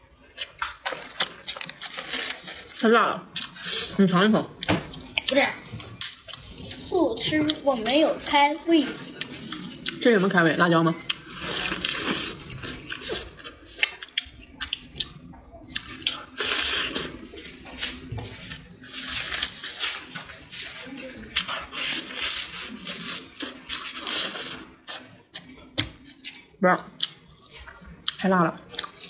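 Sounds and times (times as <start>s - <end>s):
wet chewing and smacking: 0.1s - 2.8s, 4.6s - 10.4s, 11.0s - 29.0s.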